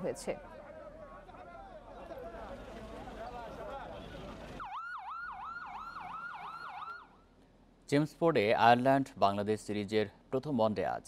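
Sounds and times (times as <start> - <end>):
crowd voices: 0.0 - 4.6
ambulance siren wailing: 4.0 - 7.2.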